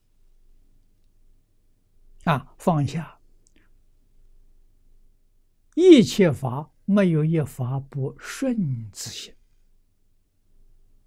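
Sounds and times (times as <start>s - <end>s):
man speaking: 2.2s - 3.2s, 5.8s - 9.4s
faint click: 3.4s - 3.8s.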